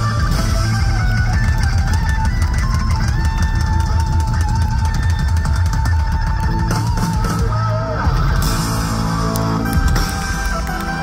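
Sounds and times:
electric guitar: 0.0 - 11.0
hard rock band playing live: 0.0 - 11.0
heavy bass: 0.0 - 11.0
pounding drum kit: 0.0 - 11.0.

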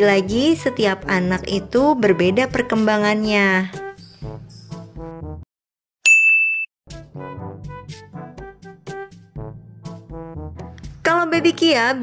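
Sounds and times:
background music: 0.0 - 5.4, 6.9 - 12.0
bright bell-like ding: 6.1 - 6.7.

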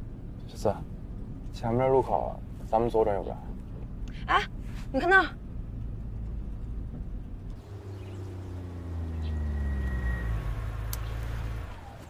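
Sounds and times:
car engine running: 3.3 - 12.0.

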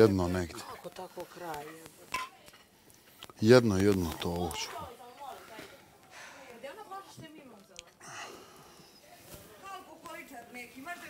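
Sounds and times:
soft rustling: 8.8 - 11.0.

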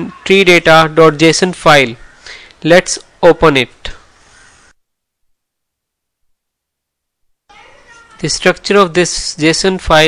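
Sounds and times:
faint recording hiss: 0.0 - 10.0.

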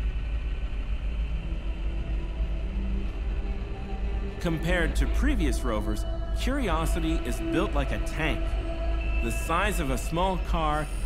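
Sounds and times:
low rumbling drone score: 0.0 - 11.0.

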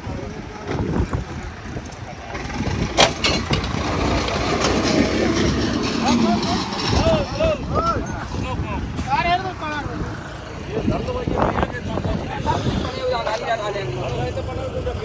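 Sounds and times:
tractor diesel engine running: 0.0 - 7.4.

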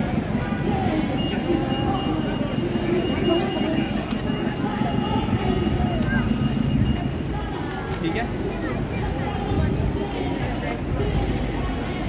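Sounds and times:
passers-by talking: 0.0 - 12.0
traffic noise: 0.0 - 12.0.

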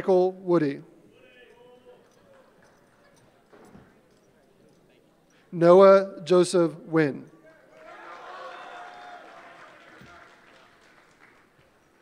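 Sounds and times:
distant voices in a hall: 0.8 - 12.0.

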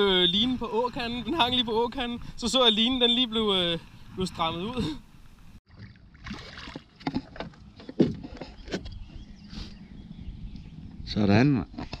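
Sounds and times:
water splashing: 5.6 - 7.6.

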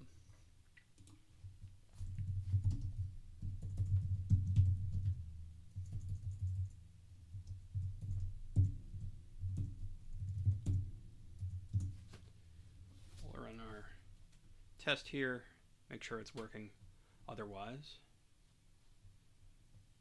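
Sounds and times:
typing on computer keyboard: 0.9 - 1.2, 2.0 - 12.0.

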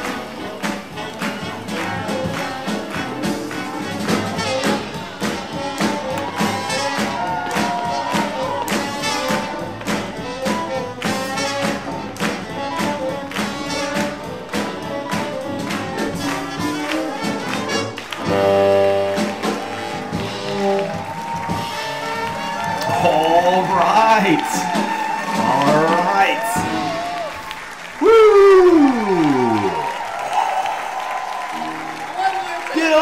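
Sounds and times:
swing jazz band with horns: 0.0 - 28.0
applause: 0.0 - 33.0
audience cheering and shouting: 4.4 - 9.9, 16.0 - 33.0.

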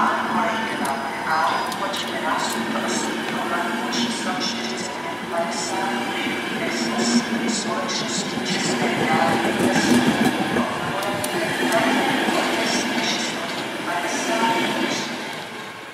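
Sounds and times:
train coaches rolling rumble: 0.0 - 15.9.

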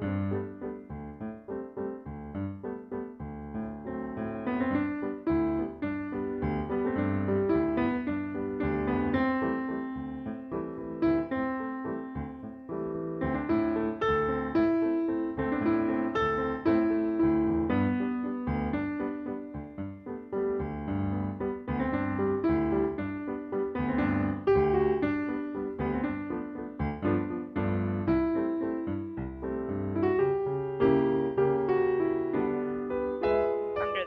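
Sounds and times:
solo piano music: 0.0 - 34.0.

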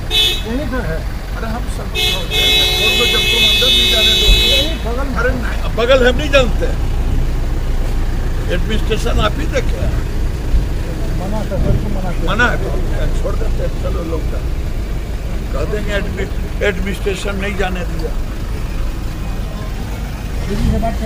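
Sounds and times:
vehicle horn blast: 0.0 - 0.8, 1.9 - 5.0
low traffic rumble: 0.0 - 21.0
voices talking: 0.0 - 21.0.

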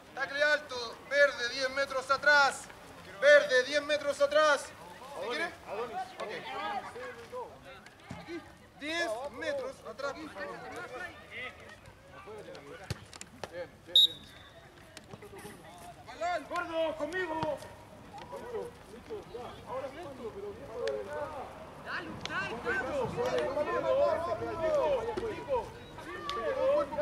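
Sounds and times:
referee's whistle pip: 13.9 - 14.5
players and spectators shouting: 19.6 - 27.0.

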